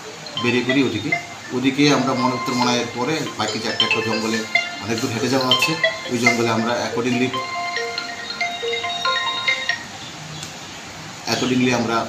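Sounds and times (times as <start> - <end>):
bell-like mallet percussion melody: 0.0 - 10.0.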